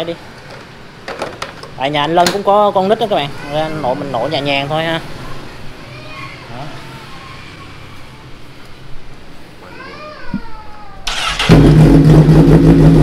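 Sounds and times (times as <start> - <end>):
motorcycle engine starting and idling: 11.1 - 13.0.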